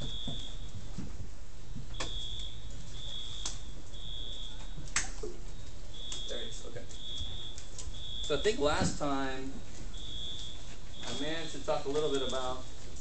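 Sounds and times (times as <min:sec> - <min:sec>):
sharp clicks: 0:06.0 - 0:08.4.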